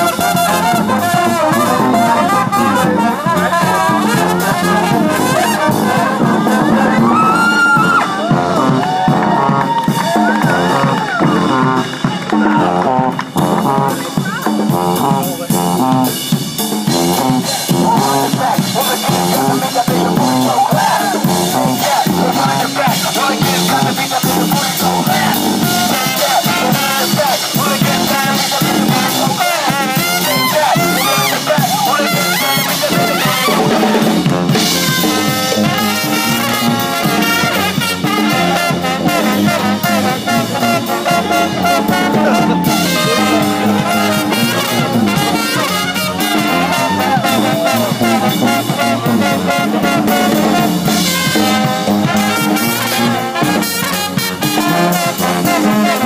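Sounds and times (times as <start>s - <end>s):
drum kit: 0.0s - 56.0s
saxophones: 0.0s - 56.0s
trombones: 0.0s - 56.0s
trumpets: 0.0s - 56.0s.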